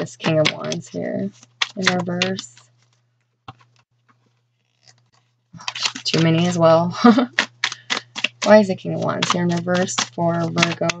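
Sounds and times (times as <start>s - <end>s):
cards clicking: 0.0s - 2.6s, 5.6s - 6.6s, 7.2s - 11.0s
cards slapping and sliding: 0.0s - 2.6s, 5.6s - 11.0s
low steady hum: 0.0s - 11.0s.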